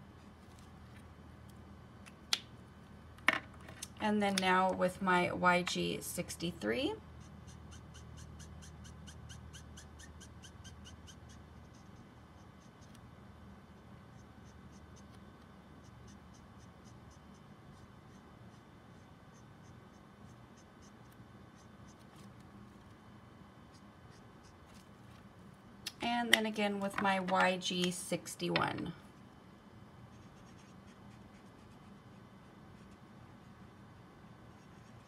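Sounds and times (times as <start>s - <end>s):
marker nib scratching on card: 7.2s - 13.0s, 13.8s - 15.2s, 15.8s - 22.5s, 23.7s - 24.9s, 30.1s - 33.6s, 34.5s - 35.0s.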